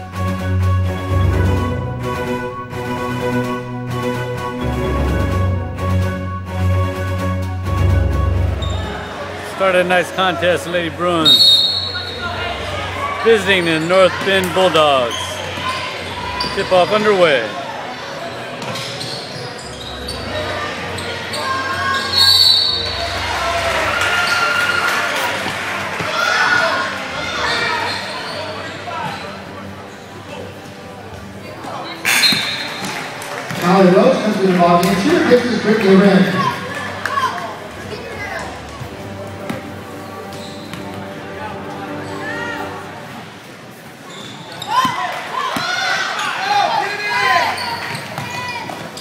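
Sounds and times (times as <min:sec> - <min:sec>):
murmur of spectators: 0:00.0 - 0:49.0.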